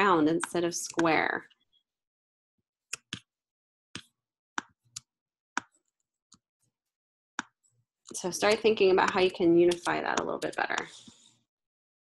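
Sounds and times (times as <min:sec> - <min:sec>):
computer mouse clicking: 0:08.4 - 0:11.2.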